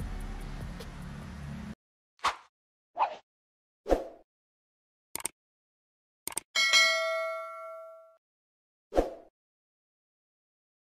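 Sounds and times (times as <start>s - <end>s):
quick clicks: 5.2s - 5.4s, 6.3s - 6.5s
notification bell ding: 6.6s - 8.2s.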